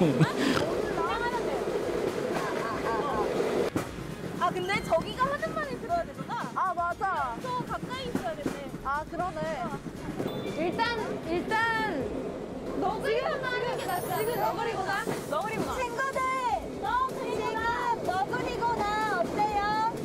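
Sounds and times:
women talking: 0.0s - 1.7s, 2.3s - 3.3s, 4.4s - 9.8s, 10.6s - 12.1s, 12.8s - 20.0s
rail bike rattling on track: 0.2s - 20.0s.

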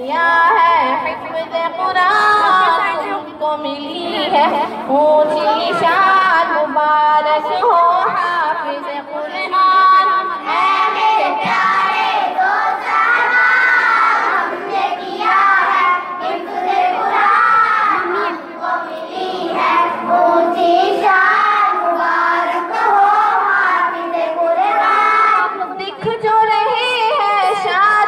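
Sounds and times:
voices singing devotional song: 0.0s - 28.0s.

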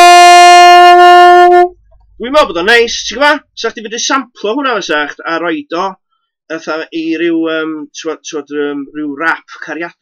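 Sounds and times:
long steady instrument note: 0.0s - 1.8s.

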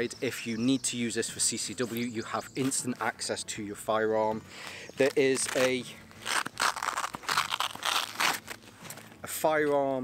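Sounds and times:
fabric bag rustling and scraping: 5.0s - 9.2s.

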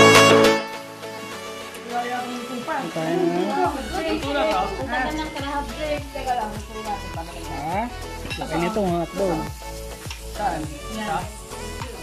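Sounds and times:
background music: 0.0s - 12.0s
meat sizzling on grill pan: 1.1s - 12.0s.

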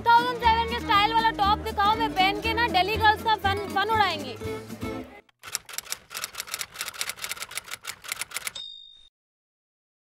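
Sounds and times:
typewriter keys clacking: 5.4s - 8.6s
typewriter carriage-return bell: 5.4s - 9.1s.

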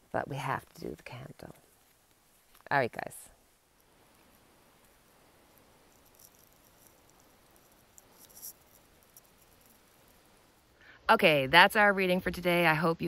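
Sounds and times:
faint background hiss: 0.0s - 13.0s.

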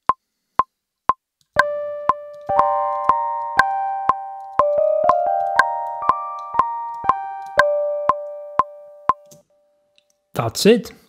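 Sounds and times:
metronome clicks: 1.6s - 9.4s
keyboard notes ringing: 1.6s - 9.8s.

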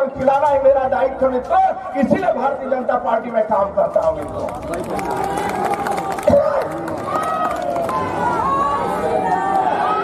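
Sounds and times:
man speaking over loudspeaker: 0.0s - 5.5s.

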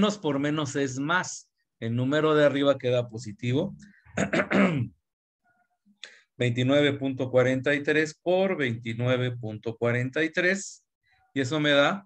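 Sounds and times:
man clearing throat: 4.1s - 5.0s.

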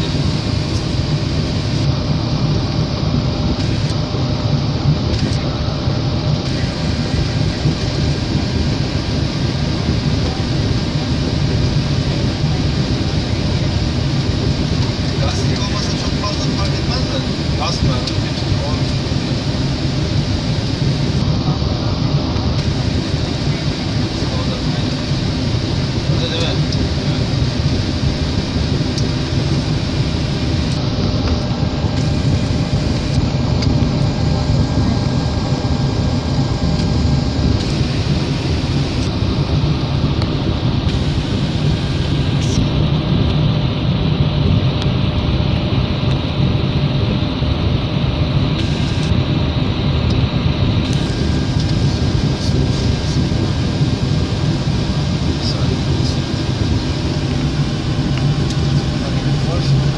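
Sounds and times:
constant low hum: 0.0s - 59.9s
jet engine and airflow noise: 0.0s - 59.9s.

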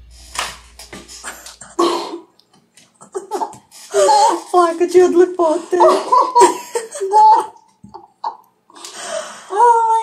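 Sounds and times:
low rumbling song note: 0.0s - 1.8s
women squealing and gasping: 3.9s - 4.5s.

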